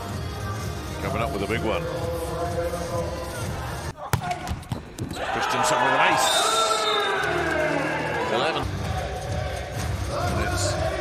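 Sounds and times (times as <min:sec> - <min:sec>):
music: 0:00.0 - 0:03.9, 0:06.7 - 0:11.0.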